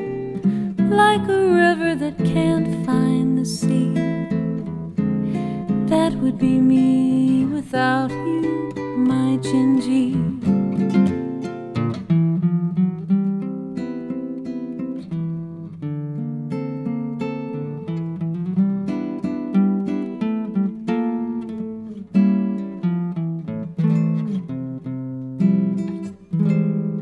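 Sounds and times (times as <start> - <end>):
acoustic guitar plucking: 0.0 - 27.0.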